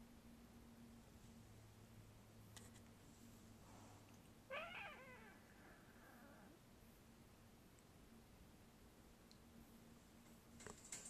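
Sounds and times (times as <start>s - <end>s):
kitten meowing: 4.5s - 6.6s.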